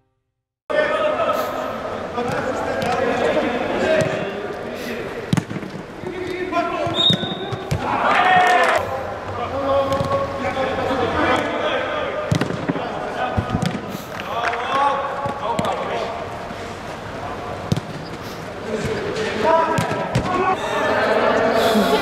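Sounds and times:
footballers shouting: 0:05.9 - 0:08.8, 0:18.6 - 0:22.0.

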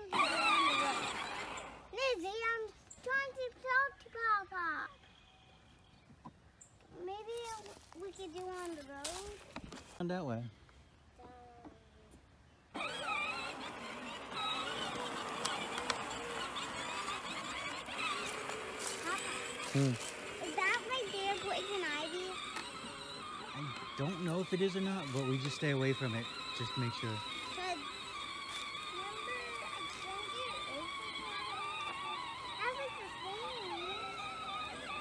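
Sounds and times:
toy tractor motor whining: 0:00.0 - 0:06.2, 0:07.0 - 0:09.7, 0:12.7 - 0:35.0
child's high-pitched squeal: 0:27.6 - 0:35.0.

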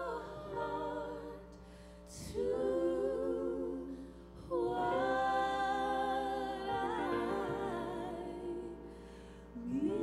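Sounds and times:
a cappella vocal ensemble: 0:00.0 - 0:10.0.

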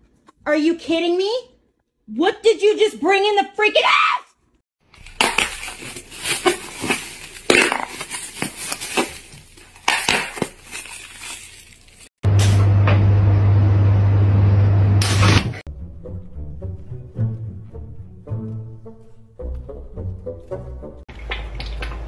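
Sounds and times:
foil crinkling: 0:04.9 - 0:12.2
loud steady low hum: 0:12.3 - 0:15.6.

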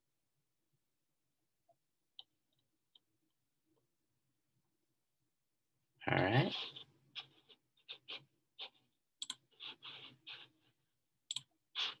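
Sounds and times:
computer mouse clicks: 0:09.2 - 0:09.5, 0:11.3 - 0:11.5.

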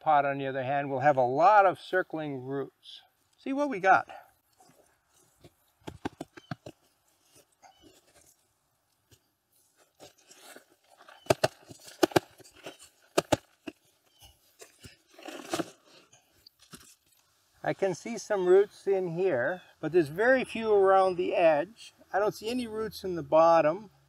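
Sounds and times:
foliage rustling: 0:03.2 - 0:19.7
soil crunching: 0:03.3 - 0:21.4.

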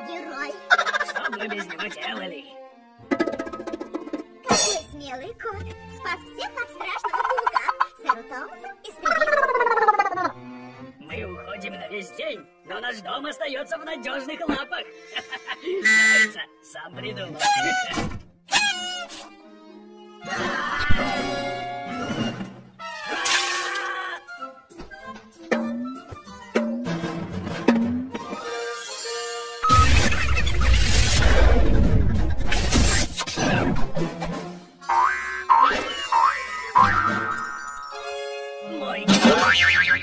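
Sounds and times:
cartoon sound effects: 0:09.0 - 0:10.4, 0:17.4 - 0:19.1, 0:29.6 - 0:33.9, 0:34.8 - 0:38.1, 0:39.1 - 0:40.0
cartoon springy boing: 0:34.9 - 0:37.6, 0:39.1 - 0:40.0.

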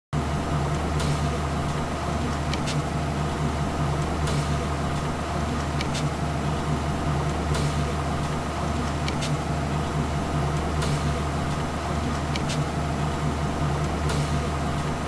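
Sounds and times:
elevator mechanical hum: 0:00.2 - 0:15.0.

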